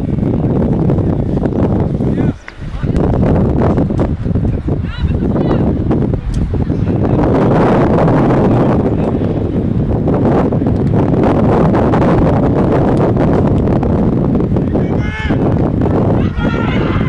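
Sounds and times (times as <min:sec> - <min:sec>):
wind buffeting microphone: 0:00.0 - 0:17.0.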